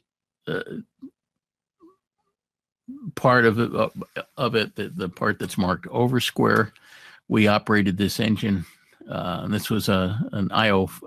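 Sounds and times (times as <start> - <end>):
man saying uh: 0.5 - 1.1, 2.9 - 6.7, 7.3 - 11.0.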